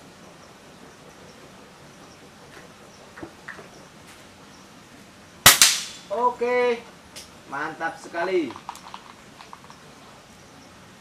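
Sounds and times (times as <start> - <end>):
air rifle shot: 5.5 - 6.1.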